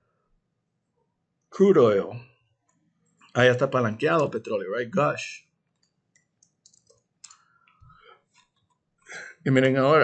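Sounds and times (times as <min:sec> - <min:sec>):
faint clicks: 0:05.7 - 0:08.8.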